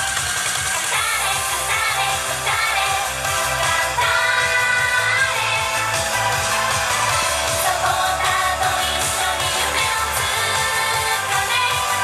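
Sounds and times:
upbeat pop song over pa: 0.0 - 12.0.

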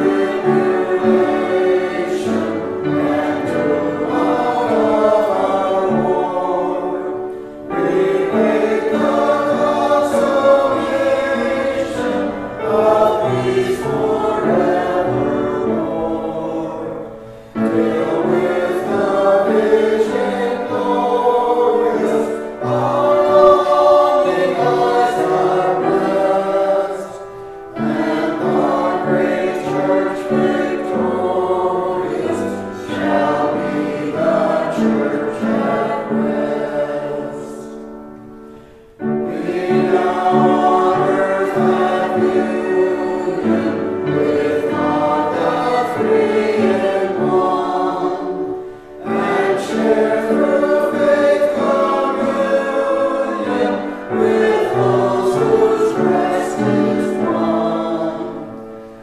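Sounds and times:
church choir singing: 0.0 - 59.0.

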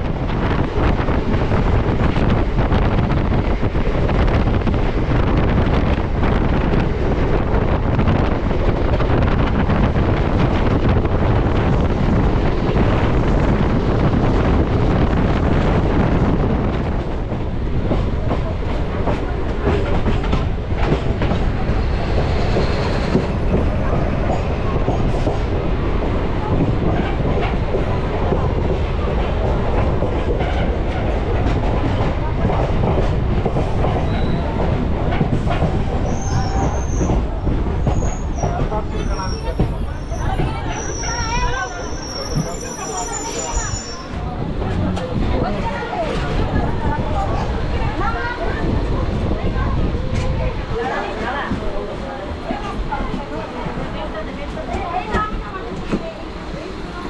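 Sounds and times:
train wheels rumbling: 0.0 - 57.0.

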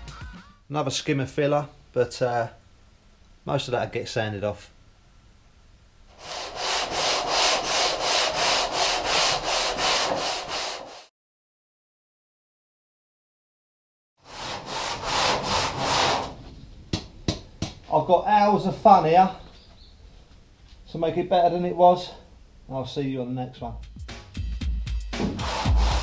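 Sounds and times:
hand sanding metal panel: 6.1 - 11.1, 14.2 - 16.4, 25.2 - 26.0.

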